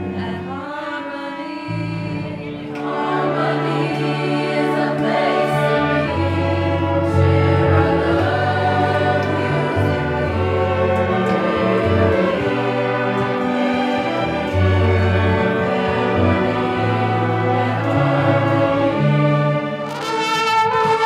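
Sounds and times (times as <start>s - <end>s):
youth choir singing: 0.0s - 20.0s
orchestra playing: 2.4s - 21.0s.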